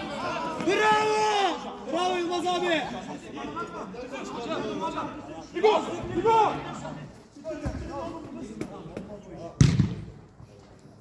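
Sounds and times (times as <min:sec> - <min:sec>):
faint players' voices: 0:00.0 - 0:11.0
football kicked thud: 0:09.6 - 0:10.1.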